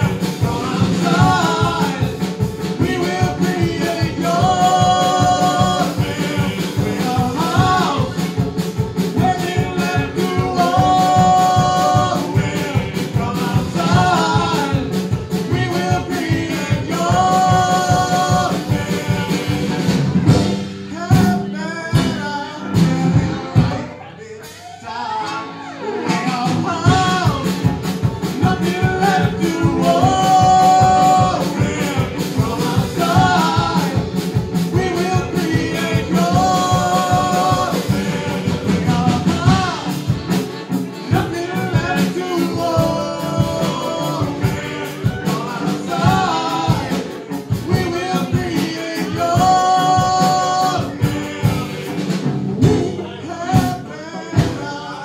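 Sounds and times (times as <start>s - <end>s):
folk band playing: 0.0s - 55.0s
two people singing together: 0.0s - 55.0s.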